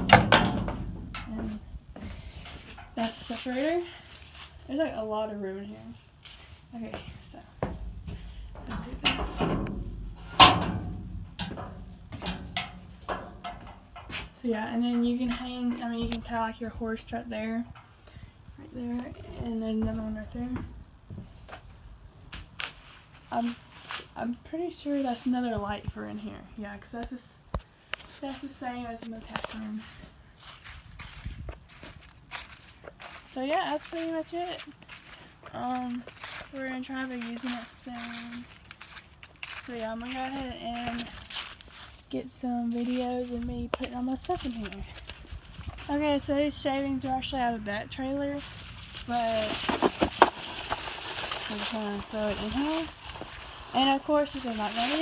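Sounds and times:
knocks and clatter in horse trailer: 0.0 - 1.6, 7.6 - 14.4
footsteps on dry leaves: 2.0 - 8.6, 21.2 - 25.7, 28.1 - 46.5, 48.0 - 55.0.

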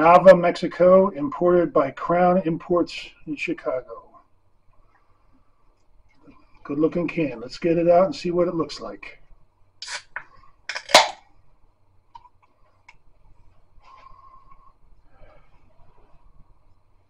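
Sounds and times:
can pull tab cracked open: 9.8 - 11.2.

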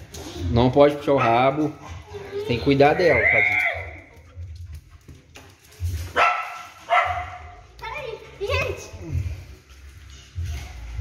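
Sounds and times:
dog barking: 1.2 - 1.8, 6.1 - 7.6.

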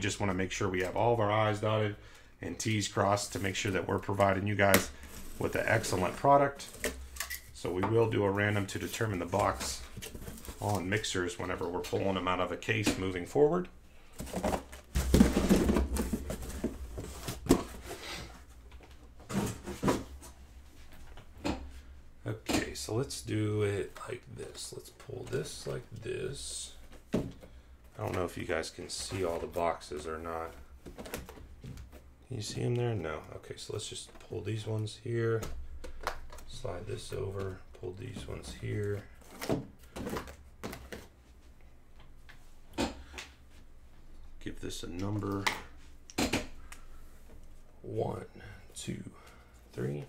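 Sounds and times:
boxes knocking on table: 14.2 - 16.8
cardboard scraping and rustling: 14.2 - 18.4.

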